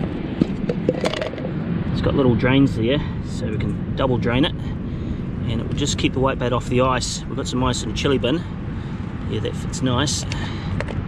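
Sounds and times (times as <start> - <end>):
low outdoor rumble: 0.0 - 11.0
plastic container clicks and knocks: 0.4 - 1.5, 10.8 - 11.0.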